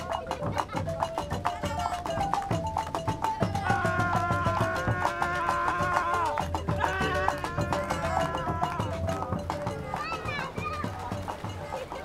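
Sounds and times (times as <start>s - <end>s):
background music: 0.0s - 12.0s
children calling out at play: 0.0s - 12.0s
child shouting: 3.5s - 9.0s, 9.8s - 11.0s.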